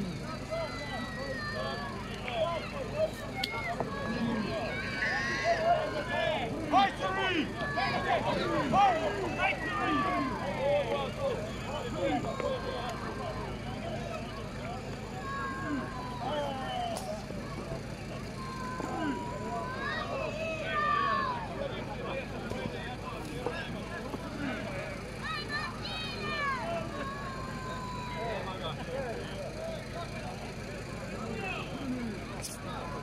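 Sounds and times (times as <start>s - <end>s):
crowd shouting: 0.0s - 33.0s.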